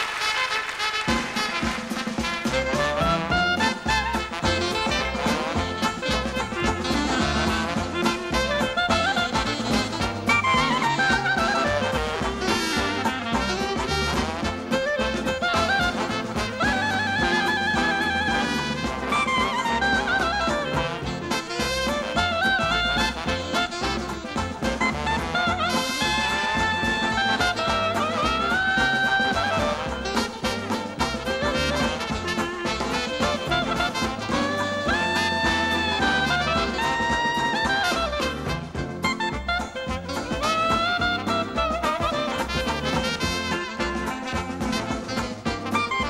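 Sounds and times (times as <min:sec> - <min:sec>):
jazz band playing a march: 0:00.0 - 0:46.0.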